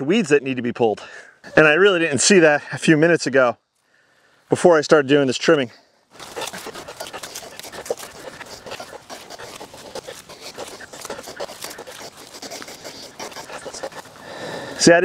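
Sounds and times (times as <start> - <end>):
foliage rustling and crackling: 6.1 - 15.0
stems snapping: 6.2 - 14.2.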